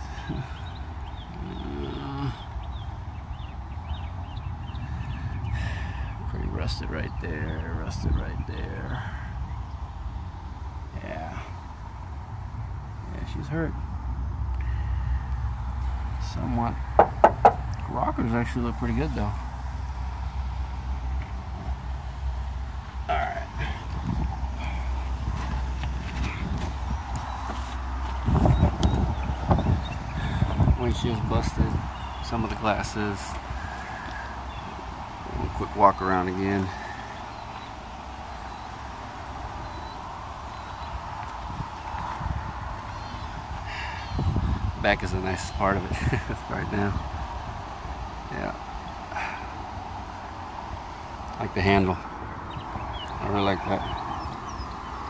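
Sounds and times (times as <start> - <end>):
low rumble on microphone: 0.0 - 35.8
small birds chirping: 0.0 - 55.0.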